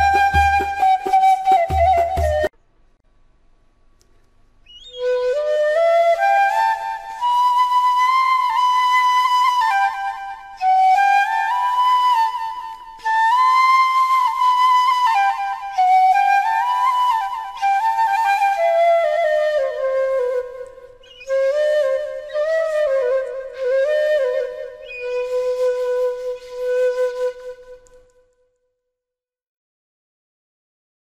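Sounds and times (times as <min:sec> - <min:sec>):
solo flute melody: 0:00.0 - 0:02.5, 0:04.7 - 0:28.6.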